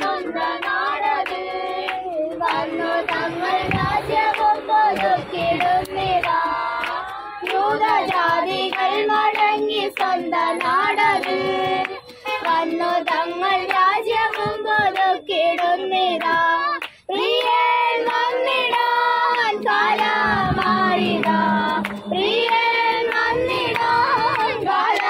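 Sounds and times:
hand clapping: 0:00.0 - 0:25.0
young voices singing together: 0:00.0 - 0:25.0.

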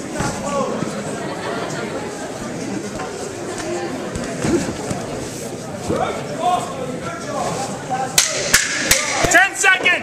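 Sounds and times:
crowd voices in hall: 0:00.0 - 0:10.0.

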